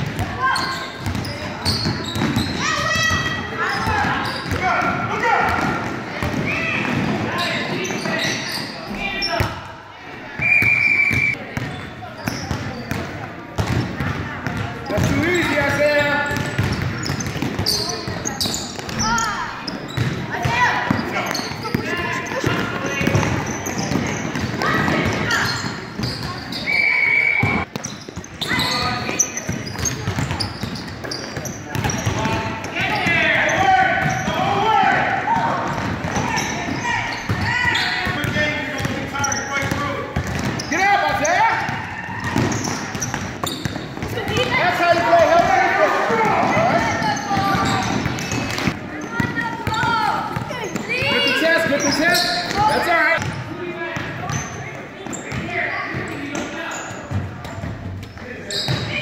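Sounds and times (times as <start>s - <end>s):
voices calling out: 0.1s - 59.0s
basketball dribbling on wood floor: 39.6s - 40.6s.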